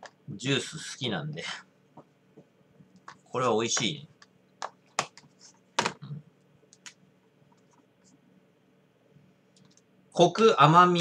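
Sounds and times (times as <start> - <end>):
whiteboard and marker clicks: 3.8 - 6.0.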